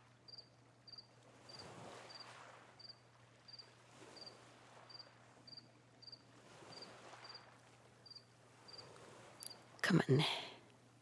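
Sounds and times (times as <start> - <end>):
cricket chirping: 0.3 - 11.0
low steady hum: 7.6 - 11.0.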